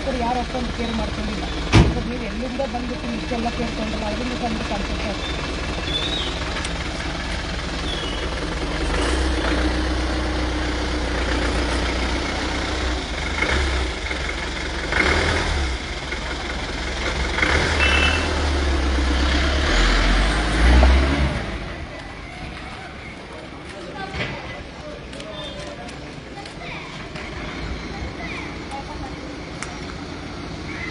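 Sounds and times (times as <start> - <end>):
diesel engine idling and revving: 0.0 - 30.9.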